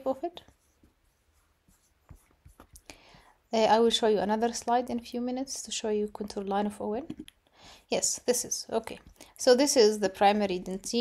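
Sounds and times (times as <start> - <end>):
faint taps: 2.0 - 2.9.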